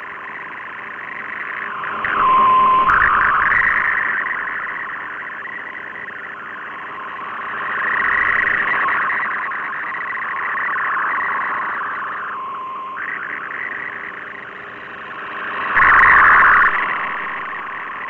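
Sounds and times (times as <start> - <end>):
warbling digital data tones: 0.0 - 18.0.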